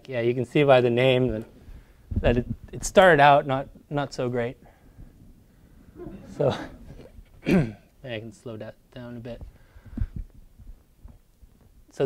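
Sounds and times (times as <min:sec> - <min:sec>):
soft low thumps: 0:09.3 - 0:11.9.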